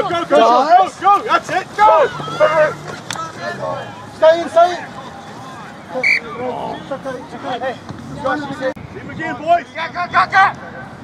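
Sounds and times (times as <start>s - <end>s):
referee's whistle blast: 6.0s - 6.4s.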